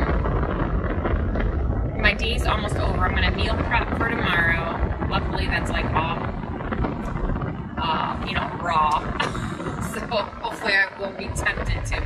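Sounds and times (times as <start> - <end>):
car cabin rumble: 0.0 - 12.0.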